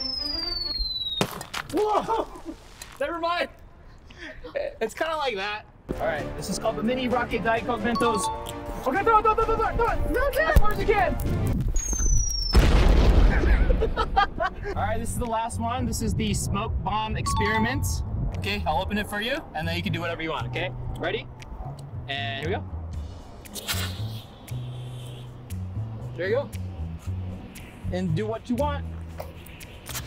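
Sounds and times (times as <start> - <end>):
falling whistle: 0.0 - 1.3, 11.8 - 12.6
explosion boom with rumble: 12.5 - 14.4
background music with bass line: 14.9 - 30.0
smoke bomb hissing: 23.6 - 25.2.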